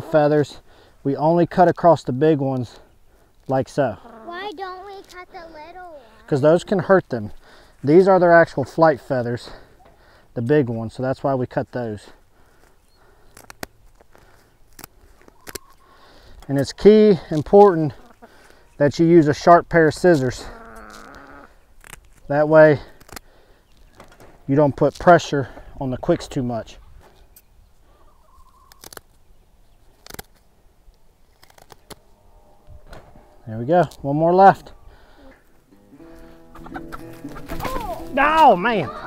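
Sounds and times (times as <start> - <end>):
scissors snipping feathers: 13.3 - 13.8, 14.7 - 15.8.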